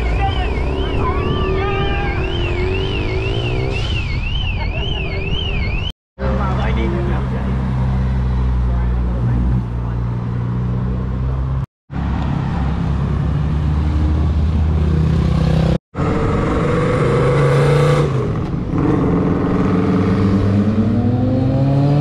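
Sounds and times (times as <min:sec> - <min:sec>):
motorcycles approaching: 0:00.0 - 0:05.4, 0:06.2 - 0:22.0
vehicle engines accelerating: 0:00.0 - 0:22.0.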